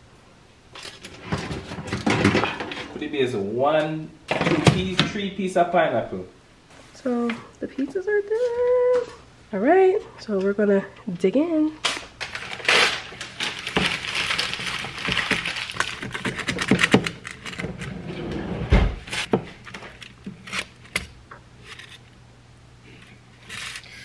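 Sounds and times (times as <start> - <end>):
foil crinkling: 11.8 - 17.9
fork scraping foil pan: 23.4 - 24.0.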